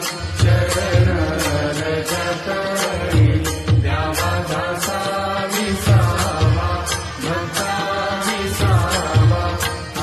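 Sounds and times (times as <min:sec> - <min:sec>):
steady percussion beat: 0:00.0 - 0:10.0.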